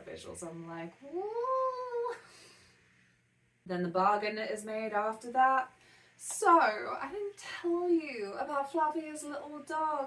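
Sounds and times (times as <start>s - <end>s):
woman exclaiming: 1.1s - 2.2s.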